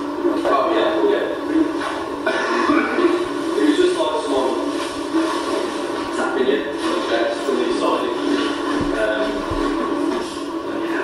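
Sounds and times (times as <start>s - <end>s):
muffled voice: 0.1s - 11.0s.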